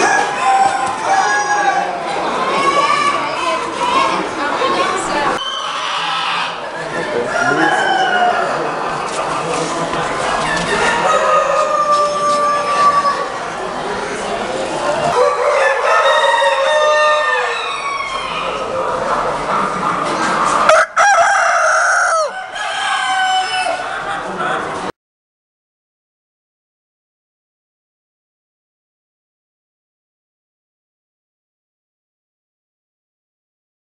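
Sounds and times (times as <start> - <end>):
murmur of voices: 0.0 - 25.0
rooster crowing: 7.1 - 8.6, 10.7 - 13.2, 15.2 - 18.6, 20.7 - 23.8.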